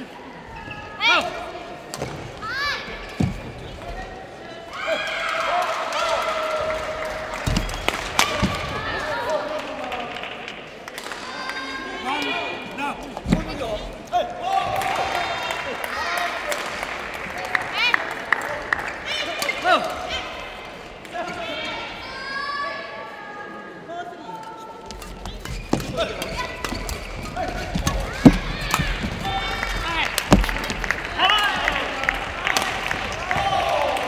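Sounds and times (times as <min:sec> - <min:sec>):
shoes squeaking on court floor: 0:00.4 - 0:01.3, 0:24.5 - 0:30.9
racket hitting shuttlecock: 0:24.9 - 0:31.0.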